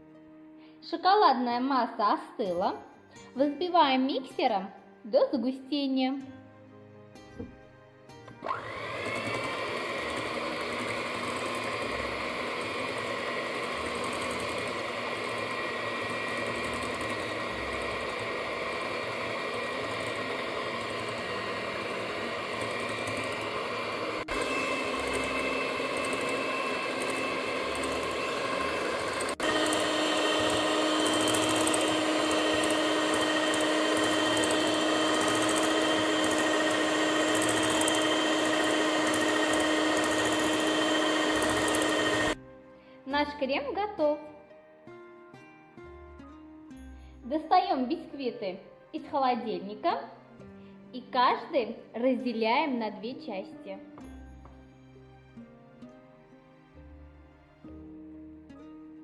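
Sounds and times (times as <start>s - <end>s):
electric hand mixer running: 8.3s - 42.4s.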